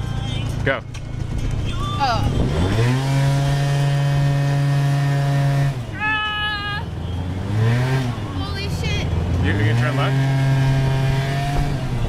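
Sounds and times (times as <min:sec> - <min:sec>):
motor scooter engine revving: 0:00.6 - 0:06.0, 0:06.9 - 0:12.0.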